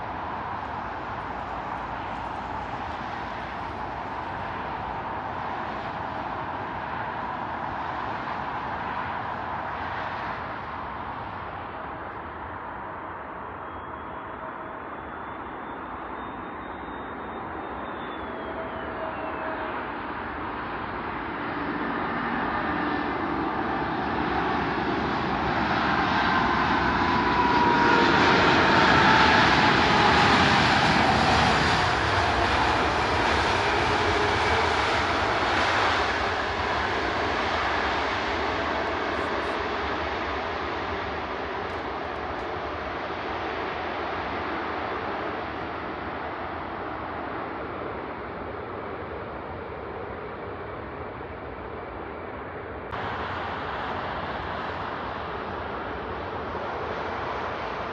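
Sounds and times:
jet airliner landing: 0:00.0 - 0:57.9.

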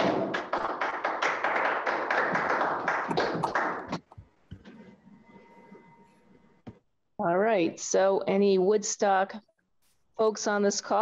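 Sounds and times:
hands clapping: 0:00.0 - 0:04.2.

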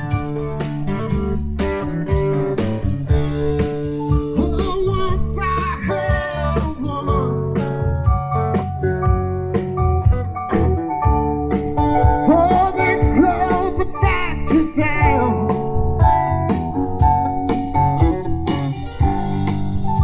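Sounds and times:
blues-rock band playing: 0:00.0 - 0:20.0
electric guitar lead: 0:00.0 - 0:20.0.

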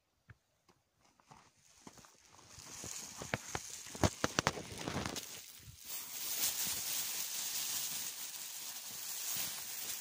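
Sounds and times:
footsteps crunching in snow: 0:01.0 - 0:10.0.

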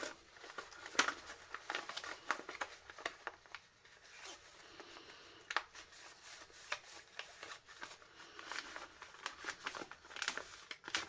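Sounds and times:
paper and plastic crinkling: 0:00.0 - 0:11.0.

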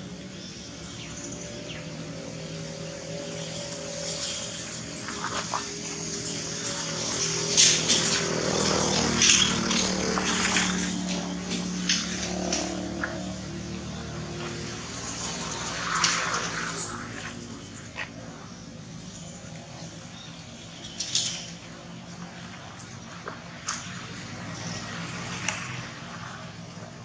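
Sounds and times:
vehicle engine passing: 0:03.2 - 0:19.2.

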